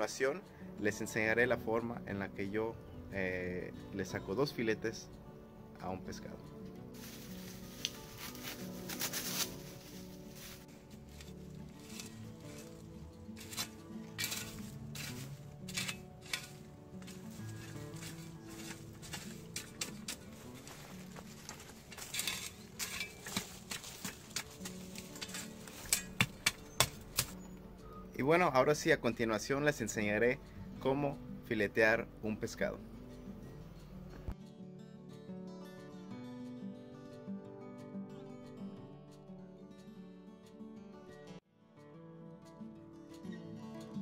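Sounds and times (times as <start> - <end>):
background music: 0.0 - 44.0
shovel scraping soil: 7.0 - 27.5.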